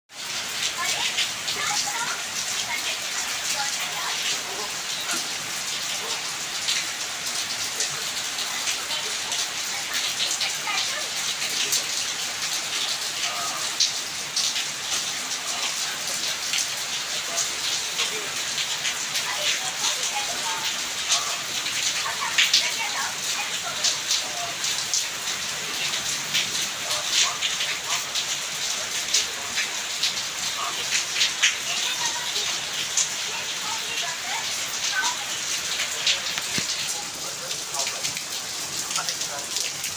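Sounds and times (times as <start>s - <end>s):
heavy rain on wet ground: 0.1s - 39.9s.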